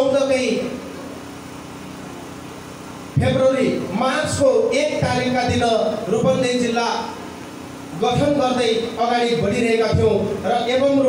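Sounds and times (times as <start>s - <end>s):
engine idling with fast pulsing: 0.0s - 11.0s.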